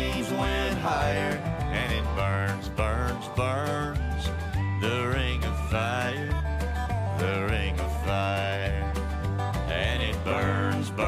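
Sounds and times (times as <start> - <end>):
acoustic guitars: 0.0 - 11.0
sliding lead melody: 0.0 - 11.0
upright bass: 0.0 - 11.0.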